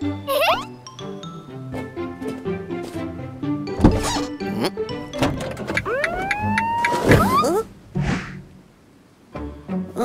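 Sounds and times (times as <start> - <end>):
wobbling squeaky pitch glides: 0.3 - 0.7, 5.7 - 7.7
rising whine: 5.8 - 7.5.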